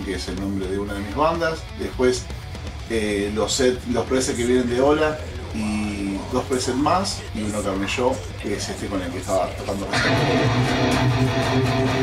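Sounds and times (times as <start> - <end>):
electric guitar chord ringing: 9.9 - 12.0.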